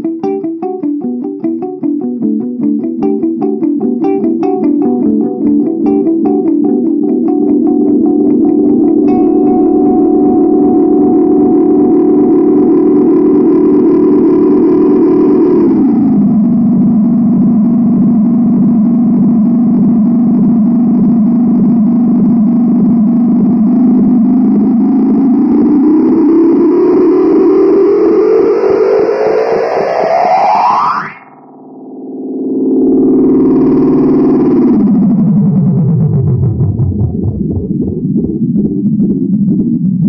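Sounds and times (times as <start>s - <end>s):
guitar pedal droning tone: 0.0s - 40.0s.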